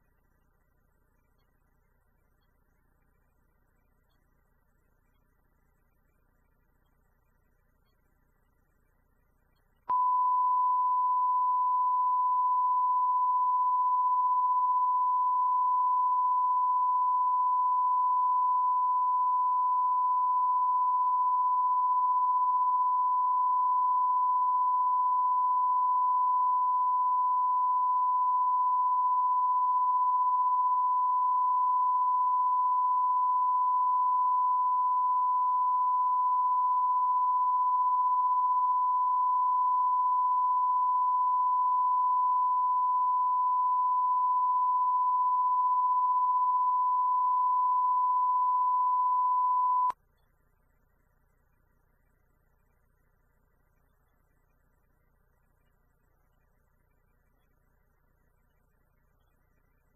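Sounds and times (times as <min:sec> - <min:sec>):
sine-wave reference tone: 0:00.0 - 0:59.9.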